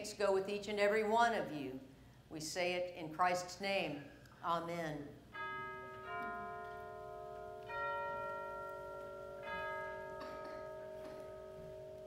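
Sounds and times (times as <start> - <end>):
bell chimes ringing: 5.4 - 12.0.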